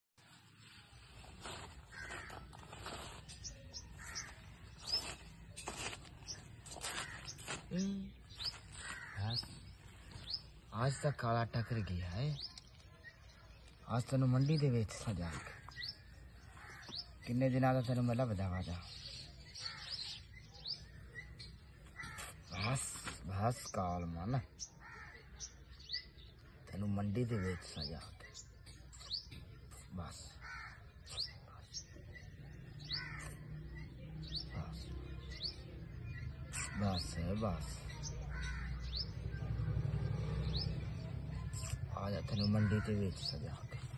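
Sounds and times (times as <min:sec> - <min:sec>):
harsh bird caws: 0:01.4 - 0:05.9, 0:06.7 - 0:12.4, 0:15.0 - 0:17.4, 0:19.0 - 0:22.8, 0:24.3 - 0:28.1, 0:30.2 - 0:31.5, 0:32.7 - 0:34.5, 0:36.2 - 0:40.8, 0:42.0 - 0:43.6.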